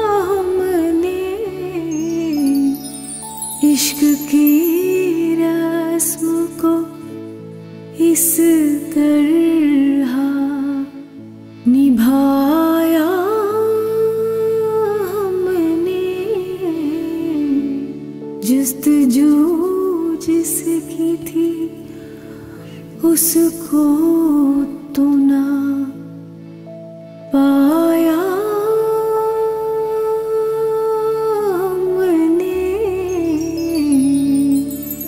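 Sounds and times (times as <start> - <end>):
woman singing a long note: 0.0 - 7.0, 27.3 - 35.0
woman singing wordless melody: 0.0 - 26.5, 27.2 - 35.0
soft instrumental accompaniment: 0.0 - 35.0.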